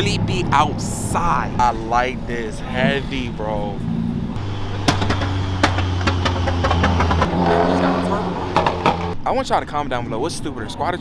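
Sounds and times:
sharp exhaust cracks: 3.0 - 9.3.

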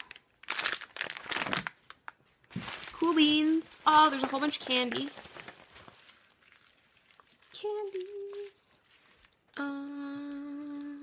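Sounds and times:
plastic wrappers crinkling: 0.0 - 11.0.

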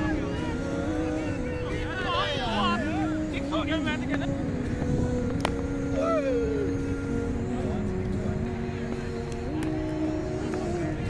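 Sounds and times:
players shouting: 0.0 - 4.2
steady low rumble: 0.0 - 11.0.

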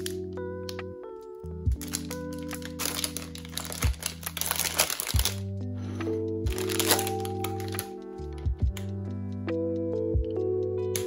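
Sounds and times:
background music: 0.0 - 11.0
paper wrapper crinkling: 1.8 - 5.5, 6.5 - 8.0.

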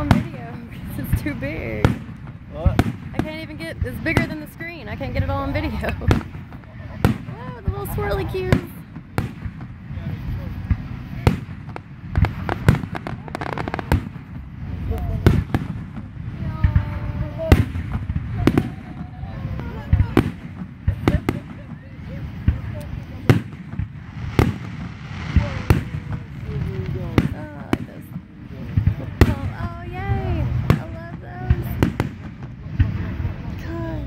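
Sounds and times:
low rumble of fireworks: 0.0 - 34.0
firework shells bursting: 22.4 - 29.6.

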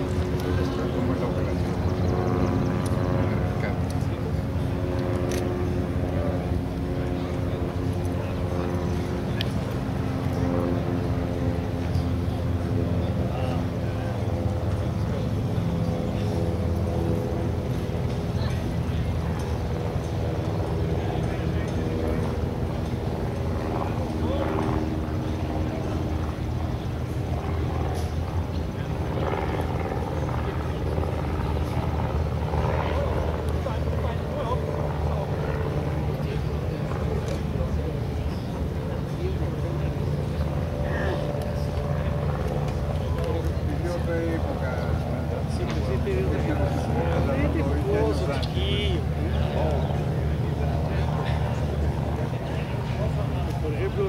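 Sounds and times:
propeller plane engine running: 0.0 - 54.0.

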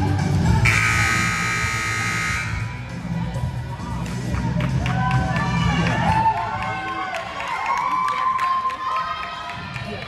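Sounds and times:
music: 0.0 - 10.0
scoreboard buzzer: 0.6 - 2.8.

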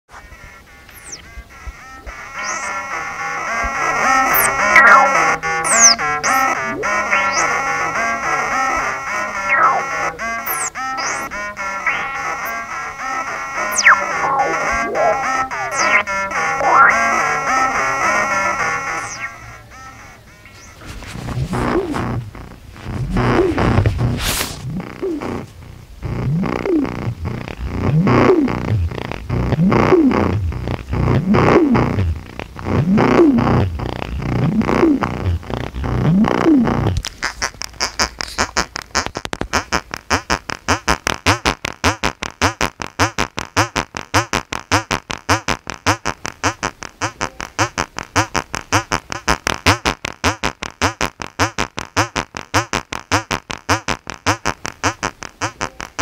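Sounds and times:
swooping pulsing synth tones: 0.1 - 25.4
sequenced synth bass line: 0.1 - 37.1
modular synthesizer texture: 0.3 - 23.7.

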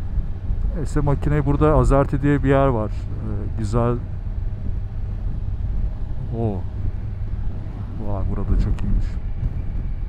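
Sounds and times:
wind noise on microphone: 0.0 - 2.1, 4.0 - 10.0
motorcycle engine cruising: 0.0 - 10.0.

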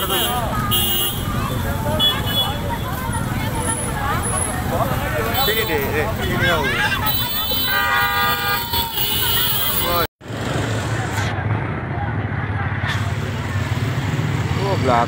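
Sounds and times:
vehicle horn: 0.0 - 1.3, 7.1 - 10.1
street crowd talking: 0.0 - 15.0.

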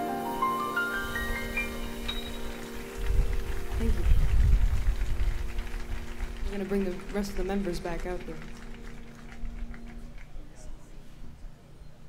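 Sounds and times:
faint held chord: 0.0 - 12.0
low rumbling on microphone: 2.9 - 6.7.

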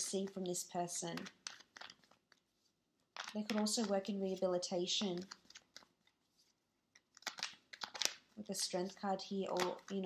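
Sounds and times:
cards rustling in hand: 0.0 - 10.0.

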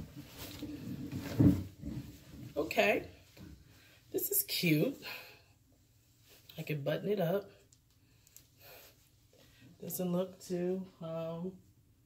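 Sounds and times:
fabric rustling: 0.0 - 3.8.

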